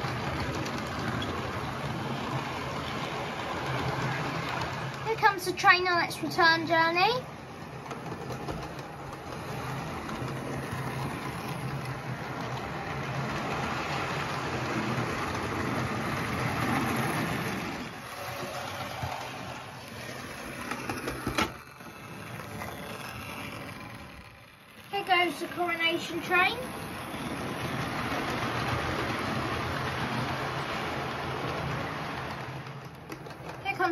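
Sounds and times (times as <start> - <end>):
model train motor whirring: 0.0 - 33.9
train wheels rattling on track: 0.0 - 33.9.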